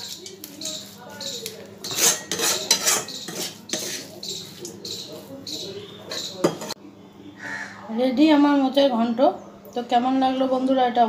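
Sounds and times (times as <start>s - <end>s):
metal spatula scraping a wok: 0.0s - 6.8s
crow cawing: 7.4s - 7.9s.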